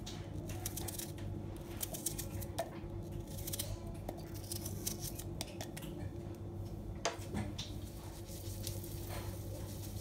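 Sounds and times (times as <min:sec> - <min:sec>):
steady low hum: 0:00.0 - 0:10.0
knife cutting onion: 0:00.4 - 0:05.8.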